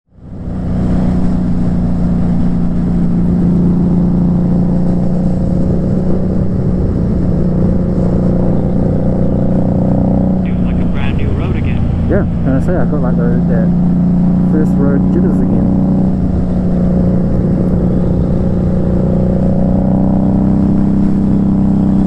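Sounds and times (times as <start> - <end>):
motorcycle engine cruising: 0.1 - 22.0
road and wind noise: 0.1 - 22.0.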